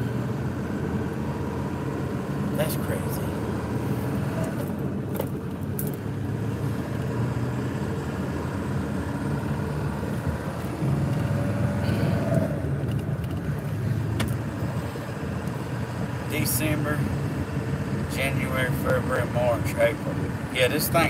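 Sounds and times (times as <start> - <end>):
vehicle engine and road noise: 0.0 - 21.0.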